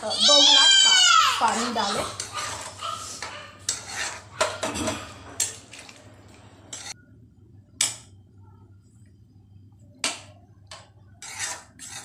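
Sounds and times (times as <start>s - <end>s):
metal spoon scraping a pot: 1.4s - 6.0s, 6.7s - 7.0s, 10.7s - 12.0s.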